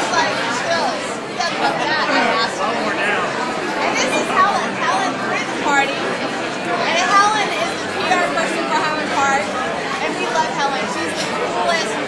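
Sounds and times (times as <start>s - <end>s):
overlapping conversation: 0.0s - 12.0s.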